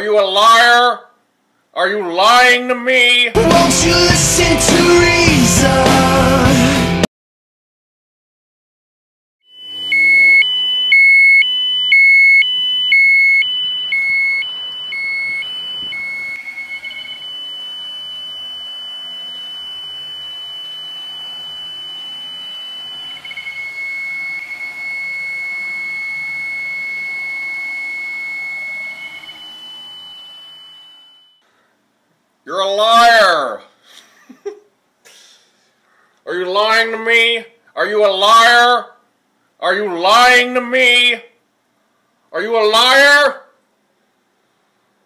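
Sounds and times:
two-tone electronic alarm beeps: 0:09.5 - 0:31.4.

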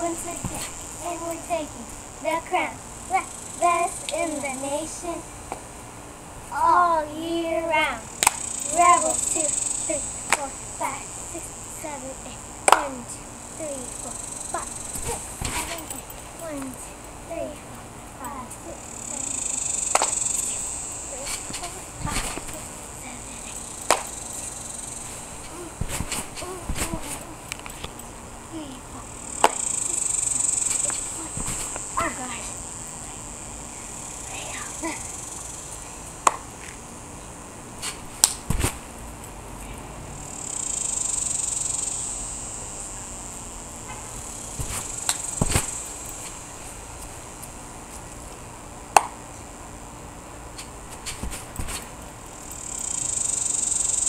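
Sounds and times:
trampoline claps and thumps: 0:00.0 - 0:01.5, 0:10.3 - 0:10.5, 0:12.6 - 0:13.0, 0:14.6 - 0:16.8, 0:19.9 - 0:20.2, 0:21.2 - 0:22.7, 0:23.8 - 0:24.1, 0:25.4 - 0:27.3, 0:29.4 - 0:29.6, 0:30.7 - 0:32.1, 0:36.2 - 0:36.5, 0:37.8 - 0:38.8, 0:44.6 - 0:45.8, 0:48.9 - 0:49.2, 0:50.6 - 0:51.9
insects buzzing: 0:00.0 - 0:54.0.

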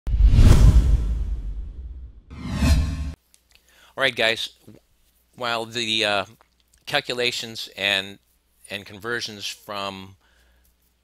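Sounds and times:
bass-heavy whoosh: 0:00.1 - 0:03.2.

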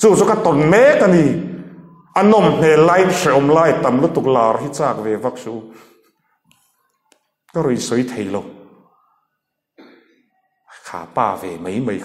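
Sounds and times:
person speaking: 0:00.0 - 0:05.8, 0:07.5 - 0:08.9
person coughing: 0:09.8 - 0:10.3.

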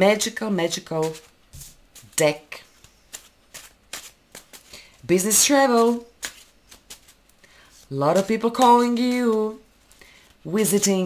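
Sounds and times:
cards being shuffled: 0:00.7 - 0:10.4.

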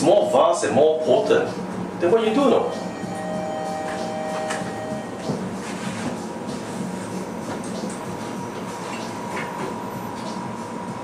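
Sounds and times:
lift mechanical rumble and hum: 0:00.0 - 0:11.0
thin whine: 0:02.6 - 0:06.0.

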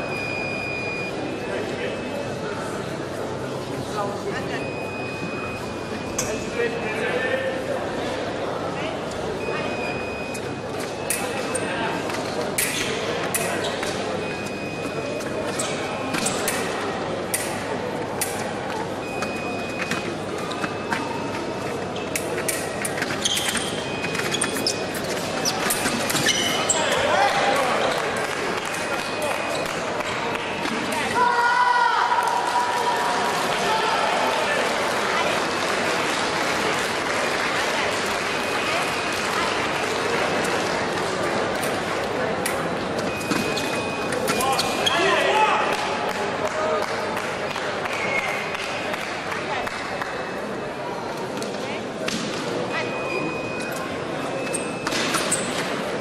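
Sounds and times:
short high squeaks: 0:22.0 - 0:27.1, 0:43.1 - 0:45.2.

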